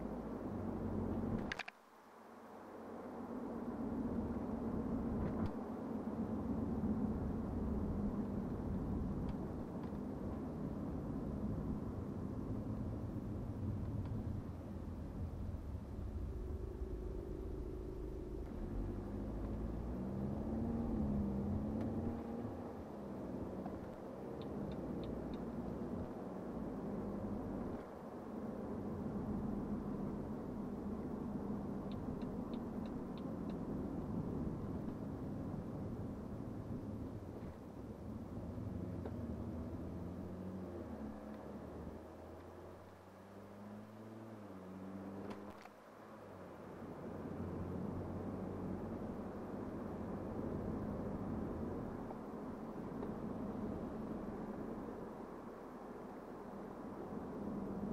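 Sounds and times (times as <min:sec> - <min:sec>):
car road noise rumble: 0:00.0 - 0:57.9
diesel engine: 0:11.0 - 0:23.2
wavering engine tone: 0:15.2 - 0:23.1
click: 0:31.9 - 0:33.6.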